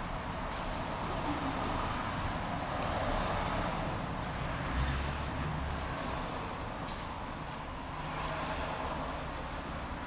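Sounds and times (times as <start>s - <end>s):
constant hum and hiss: 0.0s - 10.0s.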